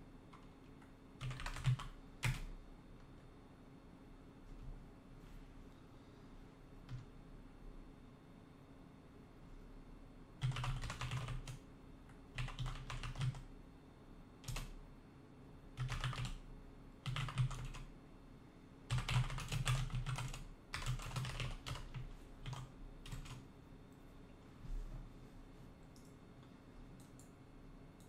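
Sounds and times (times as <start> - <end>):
faint steady hum: 0.0 - 28.0
typing on computer keyboard: 0.3 - 2.5, 10.4 - 11.6, 12.3 - 13.5, 14.4 - 14.8, 15.8 - 16.4, 17.0 - 17.9, 18.9 - 23.4.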